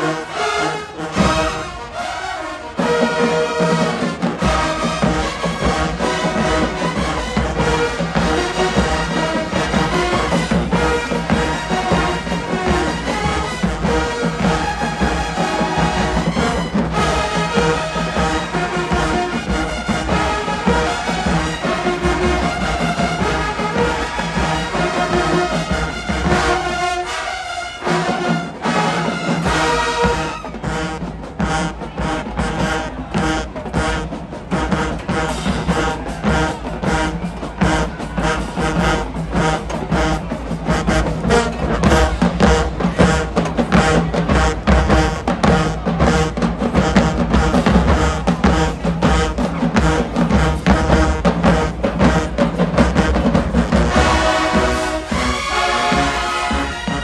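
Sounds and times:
marching band playing: 0.0s - 57.0s.

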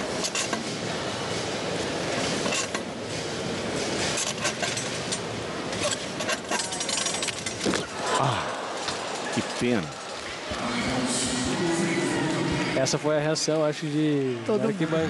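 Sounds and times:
arena crowd noise: 5.5s - 15.0s.

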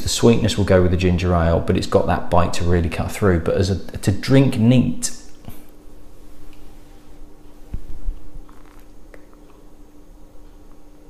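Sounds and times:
faint steady hum: 0.0s - 11.0s
man sipping and swallowing: 7.7s - 9.8s.

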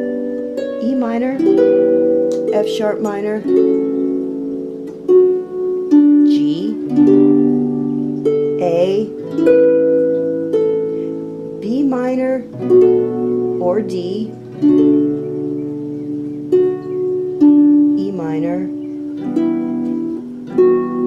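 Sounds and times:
harp strummed chords: 0.0s - 21.0s
high voice singing wavering calls: 0.0s - 21.0s.

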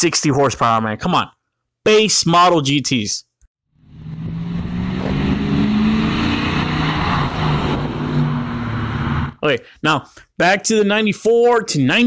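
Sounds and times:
car engine driving by: 3.8s - 9.4s.

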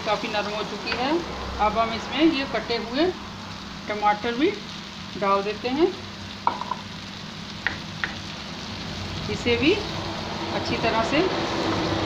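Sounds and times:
vegetables sizzling in frying pan: 0.0s - 12.0s.

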